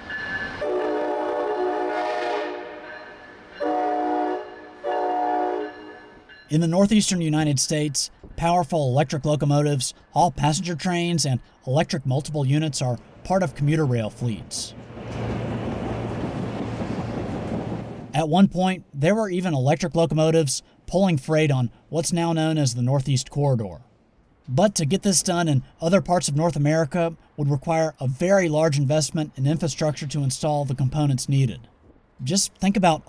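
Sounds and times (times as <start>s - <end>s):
train wheel and rail noise: 0.0s - 7.5s, 12.4s - 18.2s
locomotive air horn chord: 0.6s - 6.3s.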